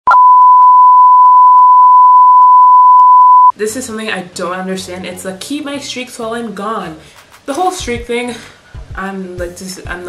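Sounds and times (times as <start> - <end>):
steady test-tone beep: 0.1 - 3.5.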